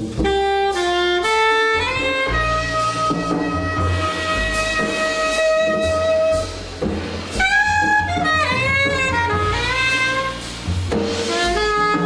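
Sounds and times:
double bass notes: 0.0 - 12.0
saxophone long note: 0.2 - 6.6, 7.3 - 10.4, 11.3 - 12.0.

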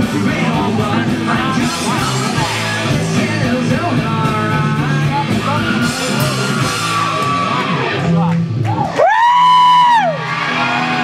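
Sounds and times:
punk rock band playing: 0.0 - 11.0
loud high yell: 5.7 - 8.0, 8.7 - 11.0.

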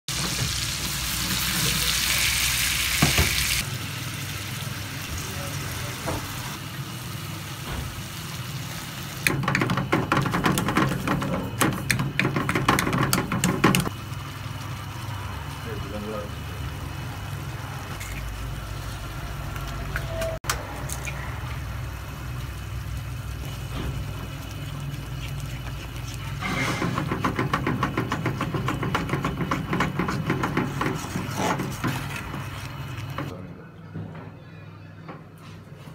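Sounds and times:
food sizzling in a frying pan: 0.1 - 9.6, 21.4 - 27.5
fork scraping a pan: 25.7 - 27.1, 30.4 - 32.8.

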